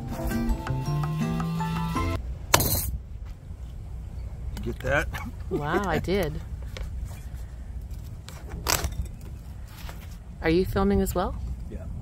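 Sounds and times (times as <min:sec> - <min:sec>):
background music: 0:00.0 - 0:02.2.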